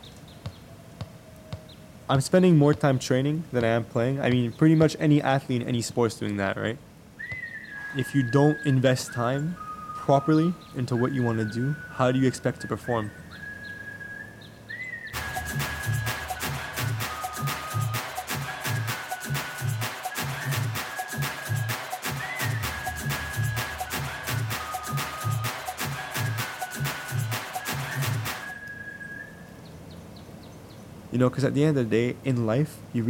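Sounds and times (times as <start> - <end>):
background noise: 0.0 - 33.0
held high music note: 15.2 - 28.6
high steady tone: 15.2 - 28.6.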